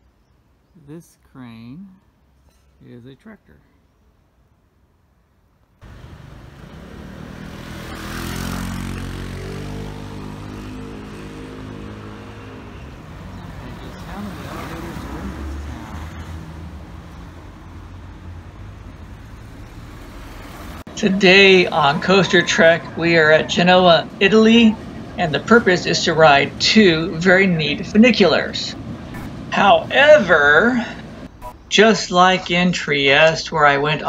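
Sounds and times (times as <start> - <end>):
low traffic rumble: 0.0 - 34.0
vehicle engine passing by: 5.8 - 31.3.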